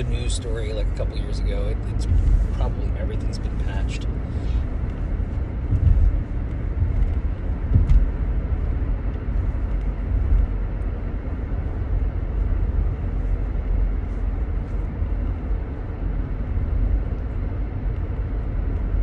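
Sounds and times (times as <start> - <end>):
road and engine rumble in car: 0.0 - 19.0
brief thump: 7.7 - 8.1.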